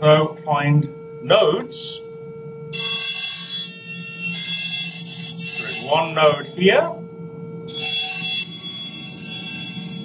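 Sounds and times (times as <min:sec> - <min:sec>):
steady vibrating beam tone: 0:00.0 - 0:10.0
pencil chattering high buzz: 0:02.7 - 0:07.0, 0:07.6 - 0:10.0.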